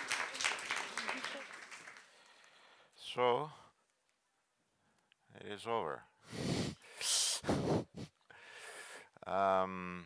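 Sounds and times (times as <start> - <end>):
man's breathy laughs: 7.4 - 8.3.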